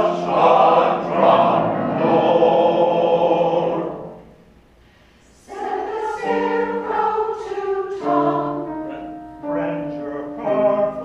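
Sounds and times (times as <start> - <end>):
choir singing: 0.0 - 4.4, 5.3 - 11.0.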